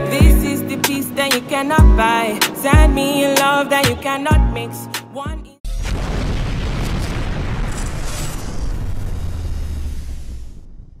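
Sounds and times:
explosion with heavy bass: 0:05.7 - 0:11.0.

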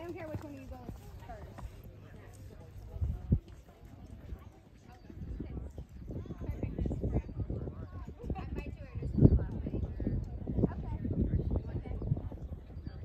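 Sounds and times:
hoofbeats on sand: 0:00.0 - 0:06.0.

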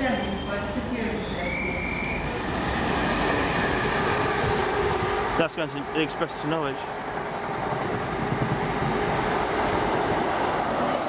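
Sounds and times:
high train whine: 0:00.0 - 0:11.0
train wheels rushing on rails: 0:00.8 - 0:11.0.

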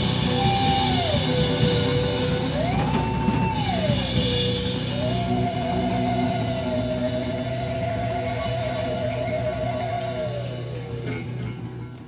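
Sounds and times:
sliding siren-like high note: 0:00.0 - 0:11.5
live rock band playing: 0:00.0 - 0:12.0.

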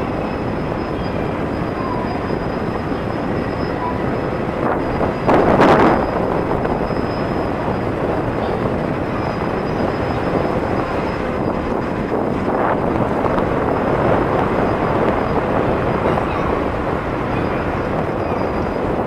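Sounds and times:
distant jet engines rumbling: 0:00.0 - 0:19.0
jet engine rush: 0:00.0 - 0:19.0.

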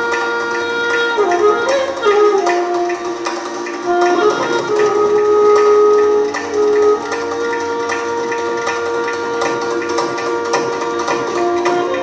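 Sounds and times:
wind instrument long notes: 0:00.0 - 0:12.0.

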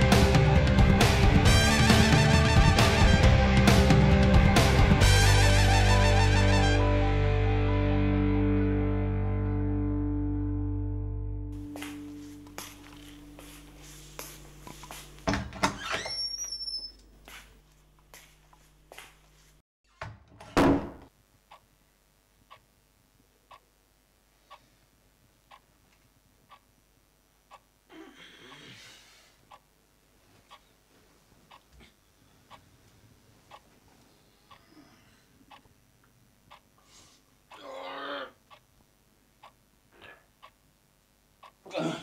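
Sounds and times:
distorted electric guitar chord: 0:00.0 - 0:13.9
loud thump: 0:20.5 - 0:21.1
faint clock ticking: 0:21.4 - 0:21.7, 0:22.4 - 0:22.8, 0:23.4 - 0:23.8, 0:24.4 - 0:27.9, 0:29.4 - 0:37.7, 0:38.4 - 0:41.6.

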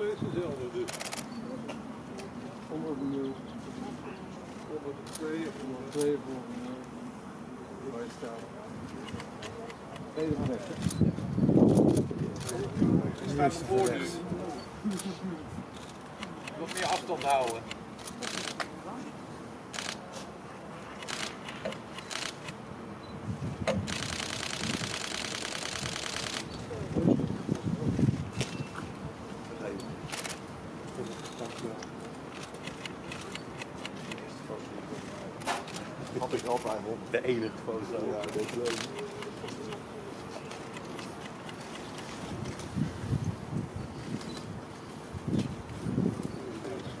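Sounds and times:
camera shutter clicking: 0:00.8 - 0:01.3, 0:15.8 - 0:18.7, 0:19.7 - 0:20.0, 0:21.0 - 0:22.6, 0:23.8 - 0:26.5, 0:38.2 - 0:39.6.

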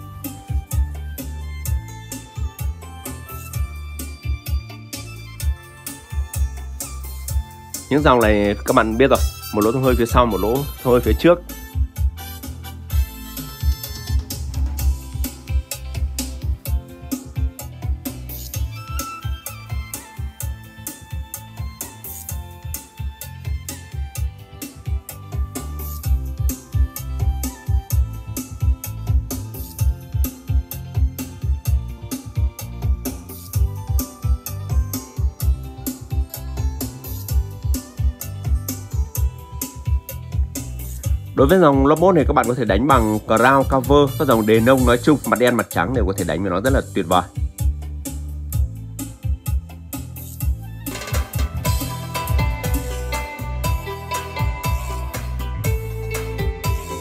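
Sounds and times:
music with heavy bass: 0:00.0 - 0:57.0.

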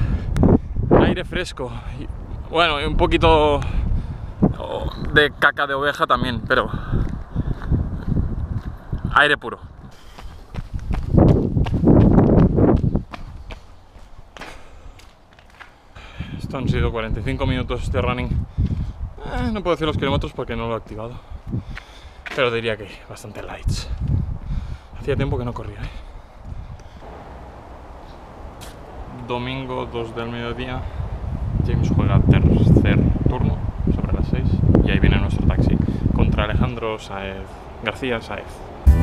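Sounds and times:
outdoor background noise: 0:00.0 - 0:39.0
running footsteps on asphalt: 0:06.4 - 0:16.0, 0:18.4 - 0:19.0, 0:20.8 - 0:22.5, 0:23.9 - 0:27.4
rough rumbling noise: 0:27.0 - 0:30.6.

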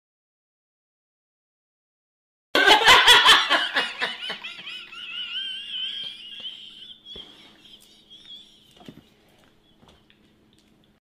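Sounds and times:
faint steady hum: 0:02.6 - 0:11.0
person squealing with laughter: 0:04.7 - 0:09.0.

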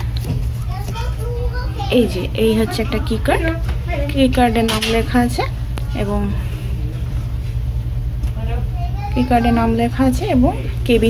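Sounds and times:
faint voices murmuring: 0:00.0 - 0:10.9
ship machinery hum: 0:00.0 - 0:11.0.

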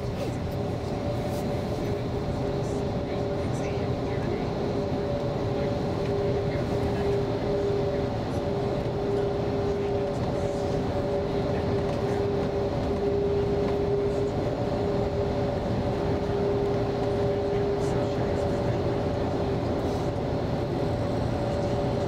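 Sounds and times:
bus engine and tyre rumble: 0:00.0 - 0:22.0.

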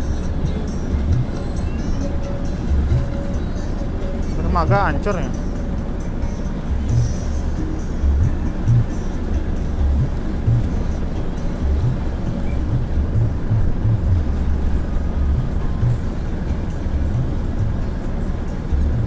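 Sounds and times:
small boat engine under way: 0:00.0 - 0:19.0
wind buffeting microphone: 0:00.0 - 0:19.0.

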